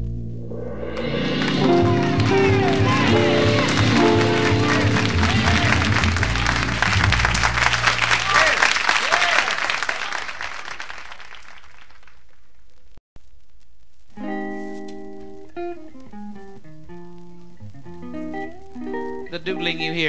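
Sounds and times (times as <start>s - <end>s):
jazz guitar soft chords: 0.0s - 7.5s, 14.0s - 20.0s
audience applause: 1.3s - 12.4s.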